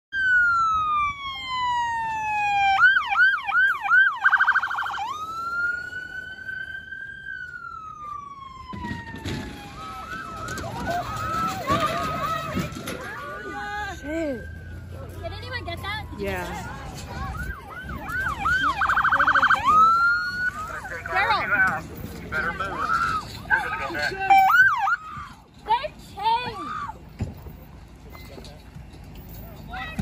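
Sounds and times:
second siren yelping: 0.2 - 12.3, 17.2 - 20.8
electronic siren wailing and yelping: 0.2 - 12.4, 17.2 - 21.2, 23.5 - 25.0.

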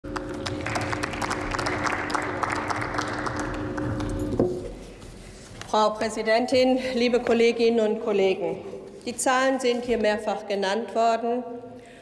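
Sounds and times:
crowd applauding: 0.0 - 4.6
steady hum: 0.0 - 10.4.

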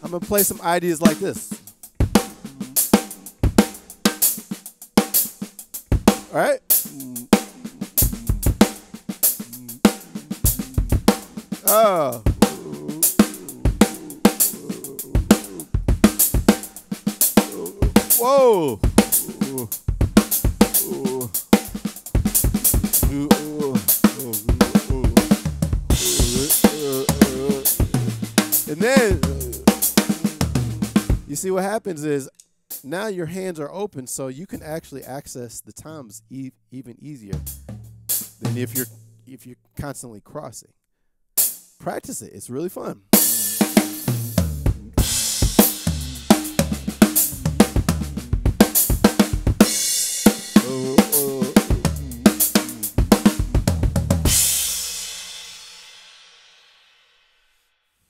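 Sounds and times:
drum kit funk groove: 0.0 - 31.5, 37.4 - 39.1, 43.2 - 55.4
cymbals: 43.2 - 44.3, 45.0 - 56.8.

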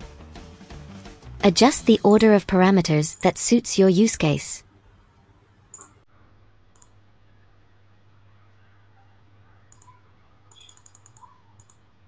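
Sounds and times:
computer mouse clicks: 5.7 - 5.9, 6.7 - 7.0, 9.7 - 11.9.

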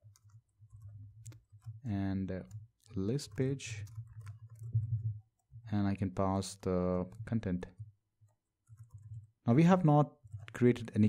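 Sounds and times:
computer keyboard keystrokes: 0.0 - 1.8, 2.4 - 5.5, 6.5 - 9.3, 10.2 - 10.6.

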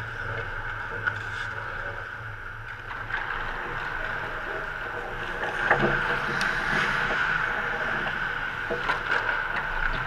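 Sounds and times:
steady rink hiss: 4.0 - 9.8.

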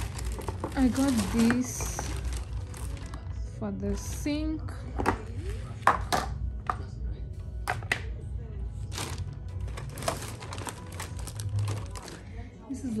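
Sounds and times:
plastic bag rustling: 0.0 - 4.2, 8.8 - 13.0
background music: 0.0 - 13.0.

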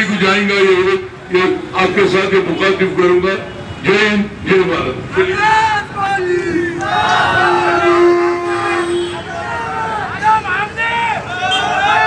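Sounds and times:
crowd shouting slogans: 5.2 - 12.0.

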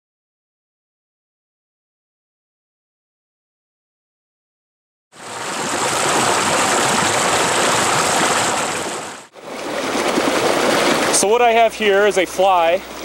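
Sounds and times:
creek splashing over stones: 5.2 - 12.6.

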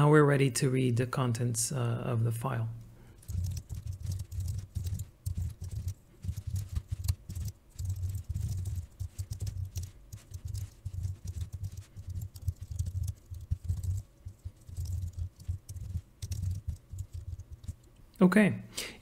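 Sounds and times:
typing on computer keyboard: 3.2 - 17.9.

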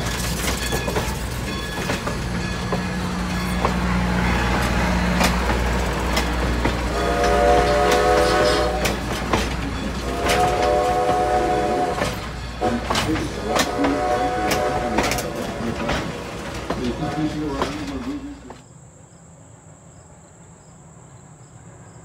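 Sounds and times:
train wheels clicking over rail joints: 0.0 - 18.6
low train rumble: 0.0 - 22.0
steam whistle blasts: 6.9 - 9.2, 10.0 - 15.6.

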